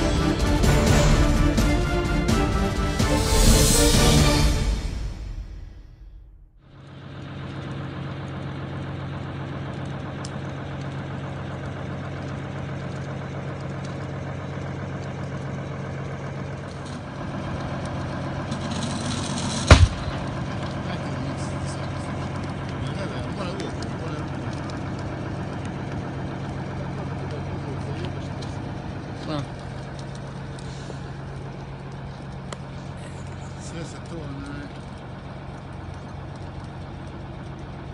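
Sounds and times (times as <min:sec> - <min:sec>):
engine humming: 0:00.0 - 0:37.9
loud bang: 0:18.8 - 0:20.4.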